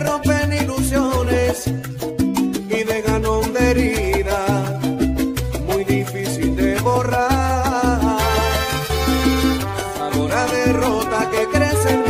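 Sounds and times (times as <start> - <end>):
instrumental salsa music: 0.0 - 12.0.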